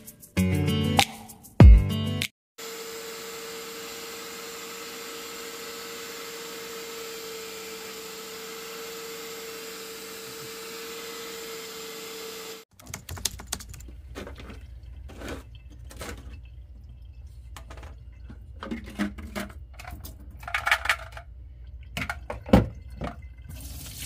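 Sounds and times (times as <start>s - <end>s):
spot cleaner suction motor: 2.6s - 12.7s.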